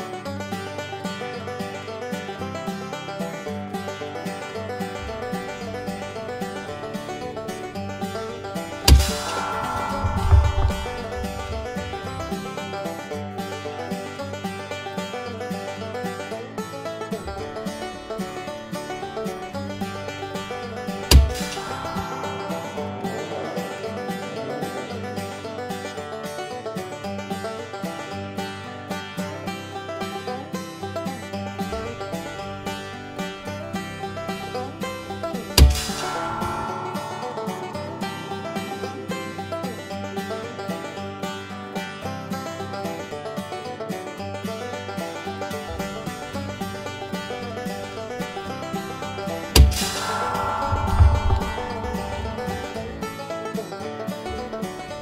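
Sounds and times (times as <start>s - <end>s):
background music: 0.0s - 55.0s.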